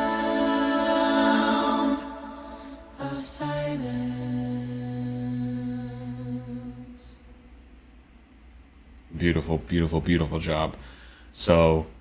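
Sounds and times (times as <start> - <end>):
vocal group singing a note: 0.0 - 7.5.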